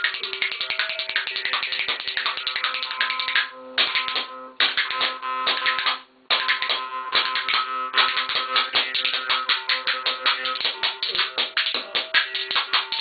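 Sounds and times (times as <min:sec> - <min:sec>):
jaw harp plucked in fast rhythm: 0:00.0 - 0:13.0.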